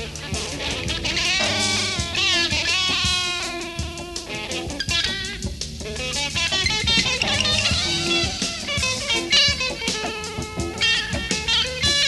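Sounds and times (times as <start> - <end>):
drum kit: 0.0 - 12.0
rock band playing live: 0.0 - 12.0.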